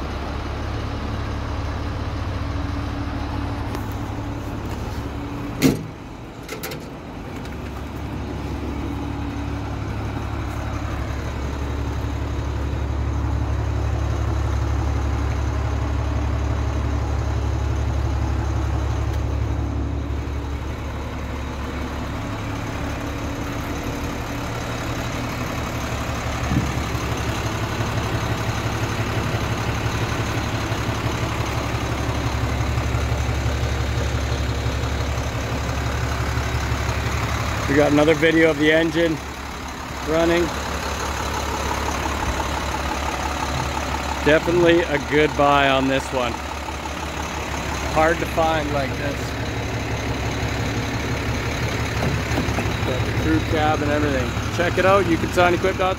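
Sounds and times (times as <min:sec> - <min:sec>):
diesel truck engine idling: 0:00.0 - 0:55.9.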